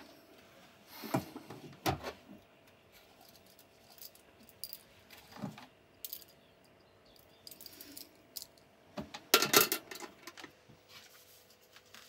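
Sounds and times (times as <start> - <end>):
small objects clicking and tinkling: 3.2 - 4.9, 6.0 - 8.7.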